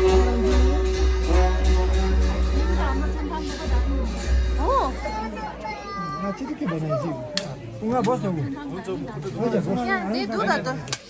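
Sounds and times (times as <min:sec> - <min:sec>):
crowd voices: 0:00.0 - 0:11.0
child calling: 0:04.7 - 0:07.2.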